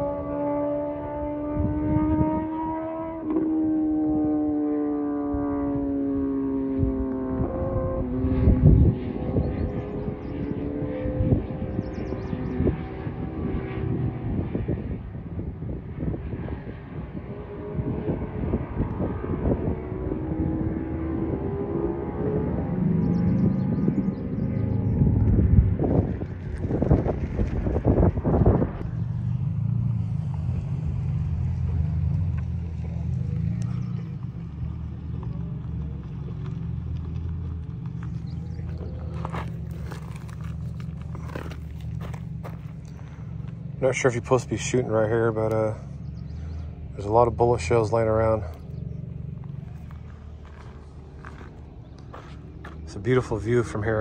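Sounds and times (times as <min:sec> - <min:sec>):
distant motorcycle engine: 0:00.0 - 0:54.0
gusts of low rumble: 0:11.1 - 0:33.1, 0:36.8 - 0:54.0.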